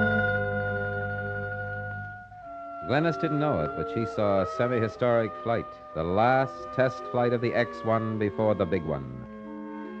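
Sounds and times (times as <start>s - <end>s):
low drone: 0.0s - 6.8s
music bridge sustained chord: 0.0s - 10.0s.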